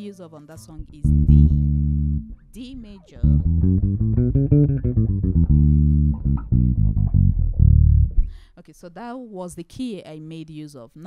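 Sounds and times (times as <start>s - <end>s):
electric bass guitar plucked notes: 0.7s - 8.4s.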